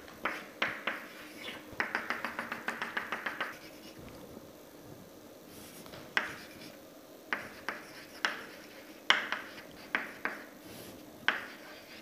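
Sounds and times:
chalk tapping on chalkboard: 0:00.2 - 0:03.8, 0:06.1 - 0:06.7, 0:07.3 - 0:10.5, 0:11.3 - 0:12.0.

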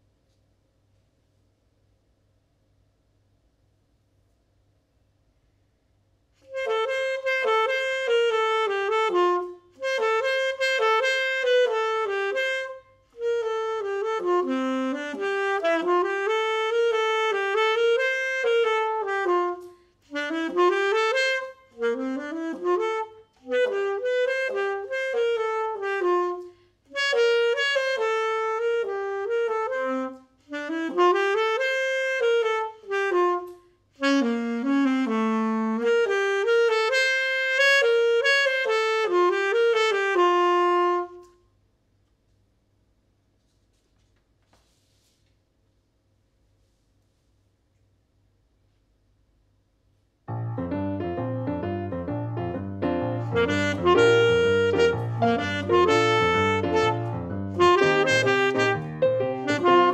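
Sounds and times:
alto saxophone solo: 0:06.4 - 0:41.5, 0:50.3 - 0:59.9.

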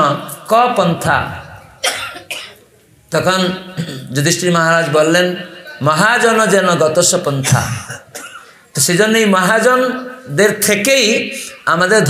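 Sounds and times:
man coughing: 0:01.8 - 0:02.7, 0:03.8 - 0:04.2, 0:07.4 - 0:08.6.

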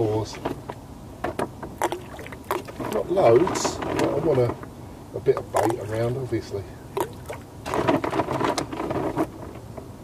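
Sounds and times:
baits plopping into water: 0:01.8 - 0:03.1, 0:05.5 - 0:05.9, 0:07.0 - 0:07.4.

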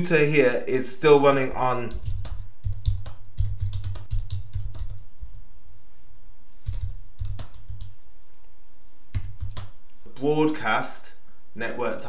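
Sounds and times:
computer keyboard typing: 0:01.9 - 0:05.0, 0:06.6 - 0:08.0, 0:09.1 - 0:09.8.

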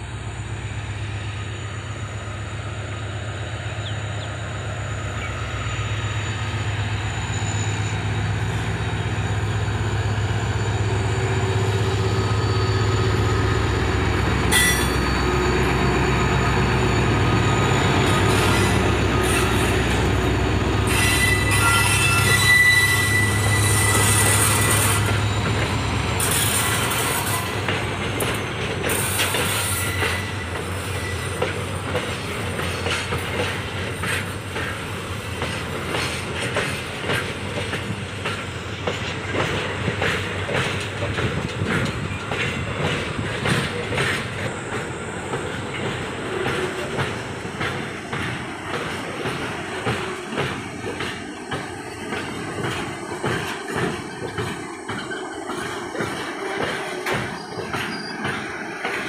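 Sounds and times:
diesel locomotive engine hum: 0:00.0 - 0:59.0
high wheel squeal: 0:04.0 - 0:33.2, 0:42.0 - 0:58.9
wagons clacking over rail joints: 0:08.0 - 0:59.0.

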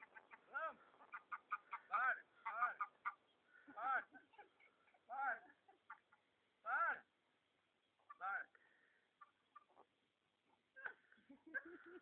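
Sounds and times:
geese honking: 0:00.0 - 0:04.1.

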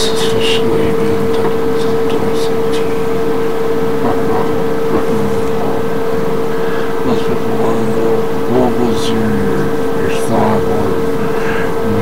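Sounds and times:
background noise: 0:00.0 - 0:12.0
loud steady hum: 0:00.0 - 0:12.0.

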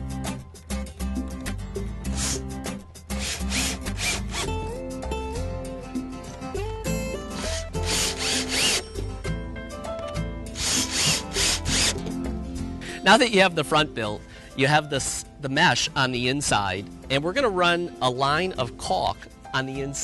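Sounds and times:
background music: 0:00.0 - 0:20.0
cordless drill driving screws: 0:02.1 - 0:02.4, 0:03.2 - 0:04.5, 0:07.4 - 0:08.9, 0:10.6 - 0:12.0.

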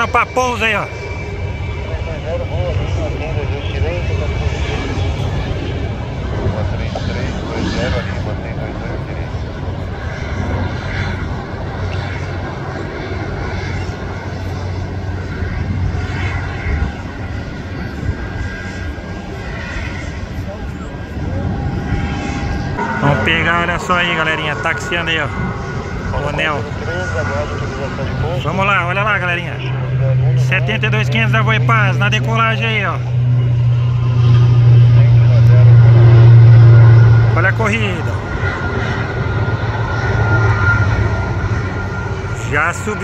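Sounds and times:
jet engines rumbling: 0:00.0 - 0:43.0.

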